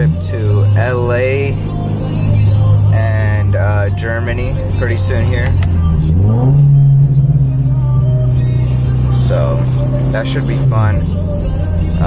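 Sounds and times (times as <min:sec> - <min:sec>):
car engine revving inside cabin: 0:00.0 - 0:12.0.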